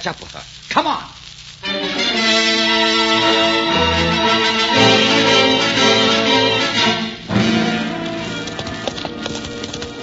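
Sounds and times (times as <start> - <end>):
radio drama bridge music: 0.1 - 10.0
held chord: 1.6 - 8.3
galloping horse hoofbeats: 7.4 - 10.0.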